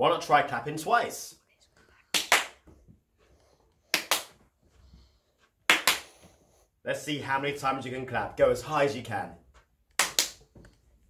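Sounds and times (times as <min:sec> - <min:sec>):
hand claps: 0:02.1 - 0:02.7, 0:03.9 - 0:04.4, 0:05.7 - 0:06.2, 0:09.9 - 0:10.5.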